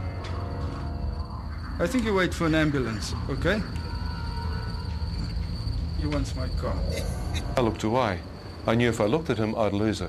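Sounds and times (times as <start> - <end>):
crickets chirring: 0.0 - 10.0
low steady drone: 0.0 - 10.0.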